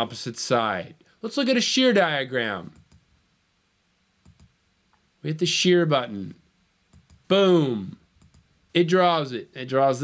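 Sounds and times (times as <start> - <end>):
computer mouse clicks: 2.7 - 3.1, 4.2 - 5.0, 6.9 - 7.3, 8.2 - 8.5.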